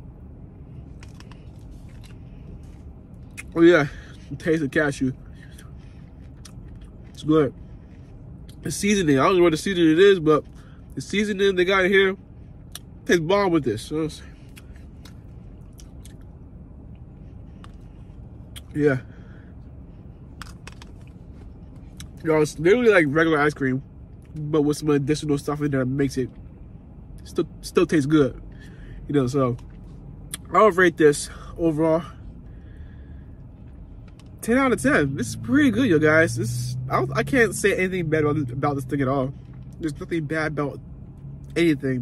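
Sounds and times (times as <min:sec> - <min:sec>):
car interior rumble: 0:00.0 - 0:42.0.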